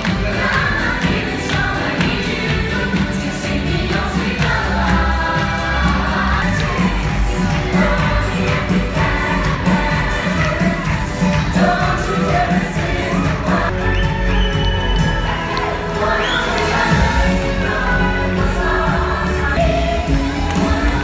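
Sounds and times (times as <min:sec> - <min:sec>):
backing music with steady beat: 0:00.0 - 0:21.0.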